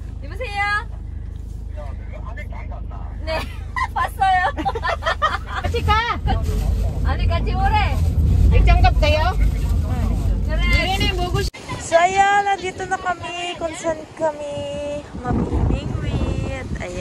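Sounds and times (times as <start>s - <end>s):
van engine and tyre rumble: 0.0s - 17.0s
voices talking: 0.1s - 17.0s.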